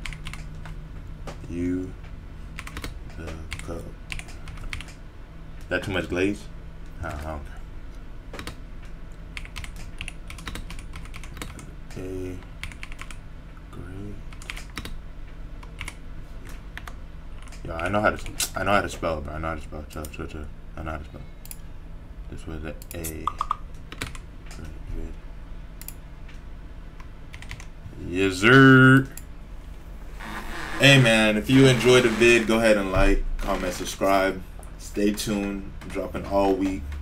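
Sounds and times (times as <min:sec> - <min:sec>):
keyboard typing: 0:00.0 - 0:00.8, 0:02.6 - 0:05.0, 0:09.4 - 0:11.7, 0:12.6 - 0:13.2, 0:14.3 - 0:15.0, 0:15.6 - 0:16.0, 0:23.2 - 0:24.3, 0:27.3 - 0:27.7
low steady hum: 0:00.0 - 0:37.0.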